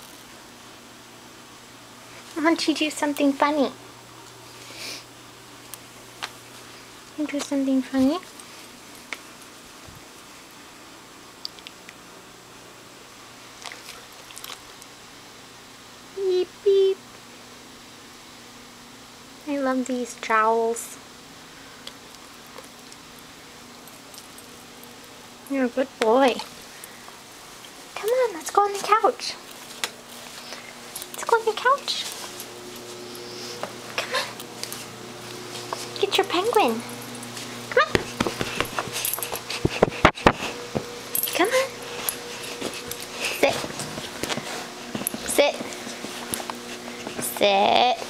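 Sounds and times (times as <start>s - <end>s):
woman telling dog sit: 2.4s - 3.8s, 7.2s - 8.2s, 25.5s - 26.4s, 28.0s - 29.4s, 31.2s - 32.2s, 36.0s - 36.9s, 37.7s - 38.1s, 41.2s - 41.8s, 43.3s - 43.7s, 45.2s - 45.6s, 47.2s - 48.0s
low hum: 29.4s - 48.0s.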